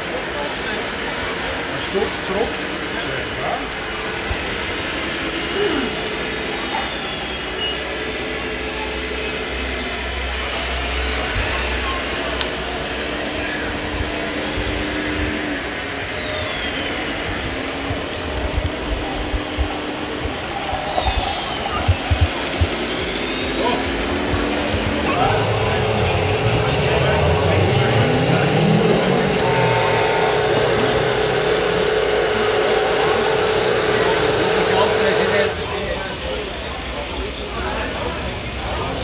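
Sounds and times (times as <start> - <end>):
crowd chatter: 0.0 - 39.0
electric motors whining: 1.5 - 35.6.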